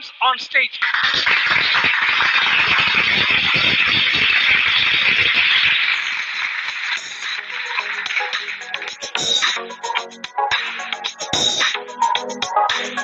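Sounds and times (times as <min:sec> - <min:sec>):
audience applauding: 0:00.8 - 0:09.6.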